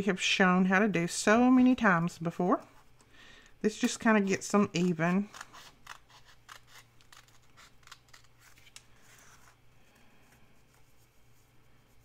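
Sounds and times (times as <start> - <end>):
scissors snipping paper: 3.8 - 8.8.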